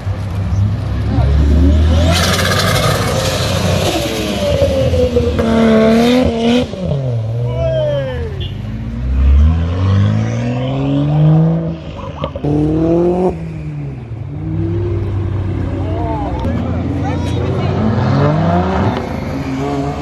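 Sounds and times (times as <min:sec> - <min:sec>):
sports car engines revving: 0:00.0 - 0:20.0.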